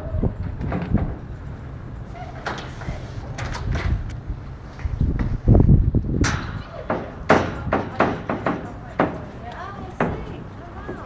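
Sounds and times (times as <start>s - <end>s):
footsteps on metal grating: 2.6s - 11.0s.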